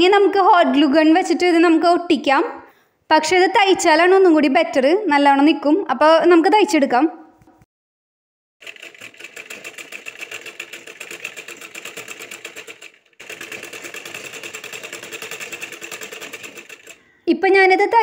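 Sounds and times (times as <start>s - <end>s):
sewing machine stitching: 8.6s - 17.2s.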